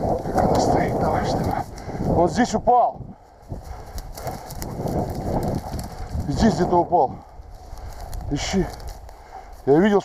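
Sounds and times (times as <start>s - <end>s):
footsteps through crackling brush: 0.0s - 10.0s
wind buffeting microphone: 0.0s - 10.0s.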